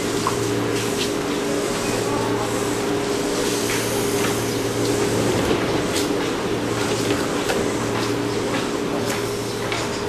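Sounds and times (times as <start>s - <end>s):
electric train humming: 0.0s - 10.0s.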